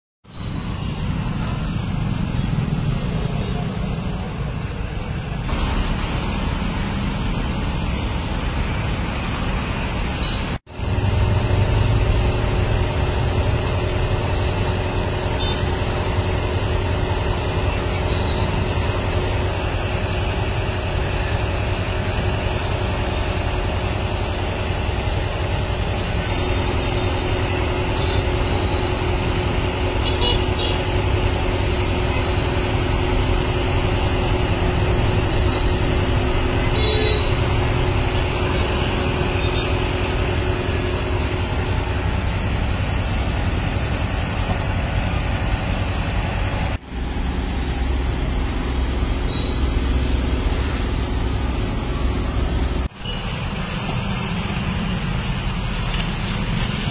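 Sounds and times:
roadside traffic: 0:00.2 - 0:56.9.

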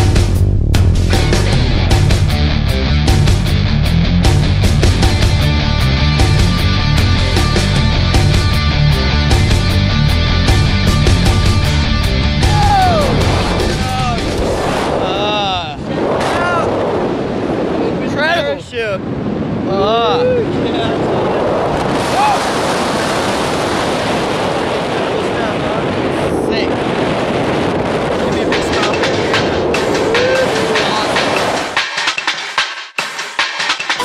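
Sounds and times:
wind rushing over microphone: 0:00.0 - 0:31.9
person calling out: 0:12.4 - 0:13.2, 0:30.0 - 0:31.2.

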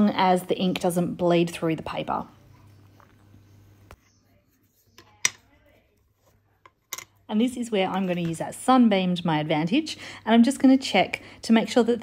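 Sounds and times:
pencil on paper: 0:04.0 - 0:05.1.

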